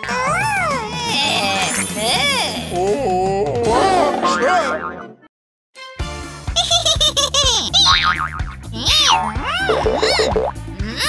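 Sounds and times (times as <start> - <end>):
bouncy cartoon music: 0.0 - 11.0
springy boing sound effects: 8.0 - 10.6.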